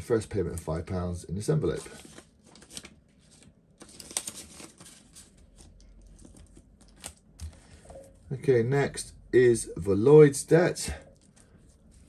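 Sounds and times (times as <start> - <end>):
banknote and plastic rustling: 1.7 - 8.2
plastic crackle: 1.8 - 7.6.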